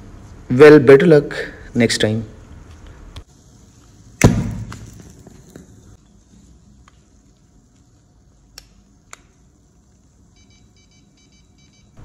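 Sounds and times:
faint electronic beeps: 10.3s - 12.0s.

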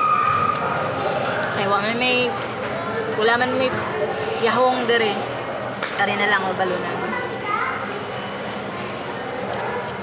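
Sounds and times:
background chatter of voices: 0.0s - 10.0s.

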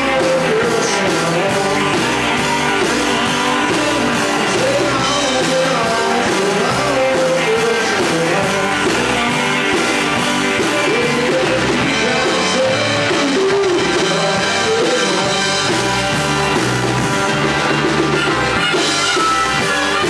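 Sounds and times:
lead vocal singing: 0.0s - 16.7s
drum kit: 0.0s - 20.0s
electric bass: 0.0s - 20.0s
electric guitars: 0.0s - 20.0s.

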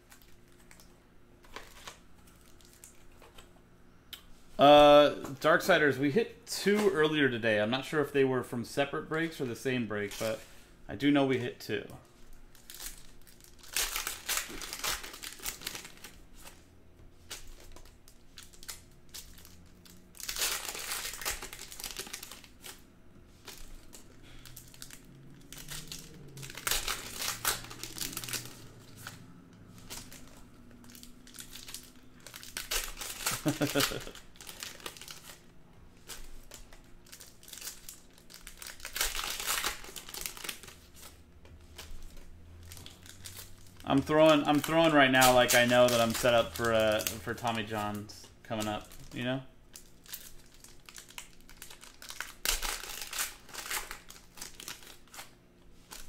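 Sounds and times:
foil wrappers crinkling: 0.0s - 3.5s, 9.2s - 10.7s, 12.1s - 56.0s.

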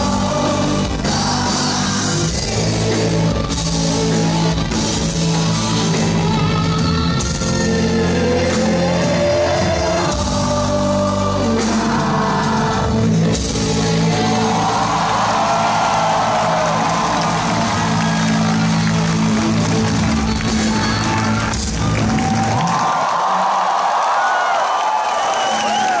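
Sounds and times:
crowd cheering and whooping: 13.8s - 26.0s.

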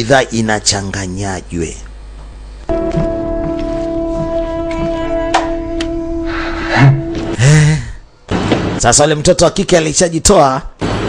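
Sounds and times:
music with held tones: 2.7s - 7.4s.

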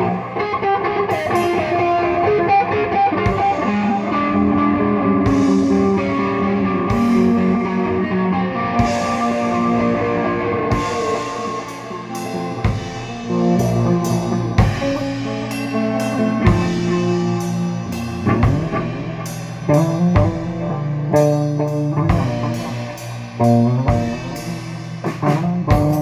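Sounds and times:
drum kit playing: 0.0s - 26.0s
electric guitar chords: 0.0s - 26.0s.

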